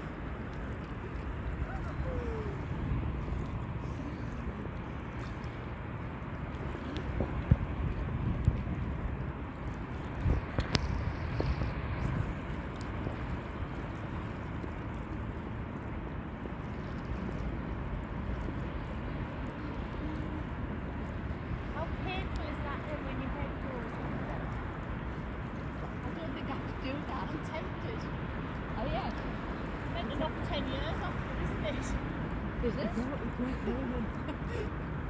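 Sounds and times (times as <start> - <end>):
wind rumbling on microphone: 0.0 - 35.0.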